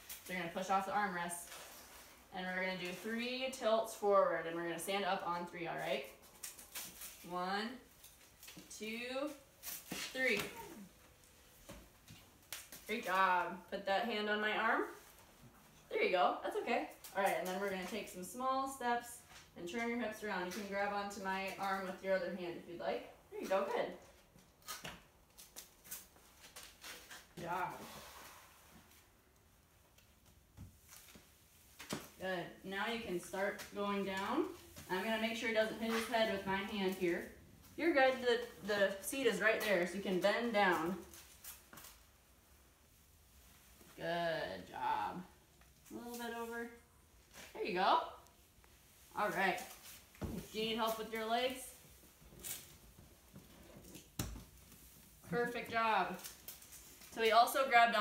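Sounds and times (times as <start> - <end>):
faint clothing rustle: 0.0 - 22.3, 23.0 - 58.0.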